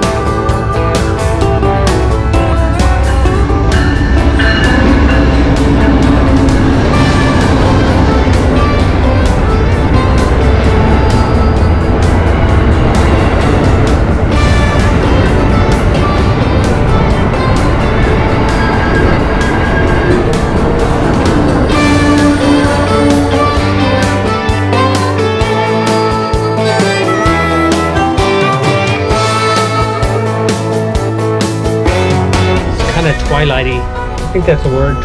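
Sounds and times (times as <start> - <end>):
music with steady beat: 0.0 - 35.0
train rumbling past: 0.0 - 35.0.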